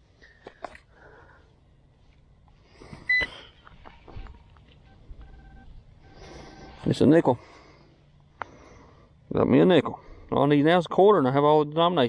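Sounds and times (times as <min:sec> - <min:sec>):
metal detector beeps: 0:03.1 - 0:03.4, 0:04.0 - 0:07.0.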